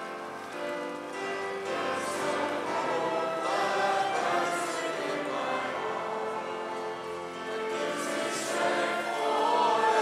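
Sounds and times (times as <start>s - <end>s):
congregation singing a hymn: 0.0s - 10.0s
instrumental accompaniment: 0.0s - 10.0s.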